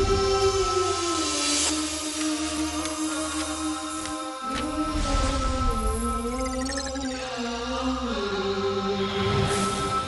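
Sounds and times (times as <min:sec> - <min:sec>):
chanted vocal sliding pitch: 0:00.0 - 0:10.0.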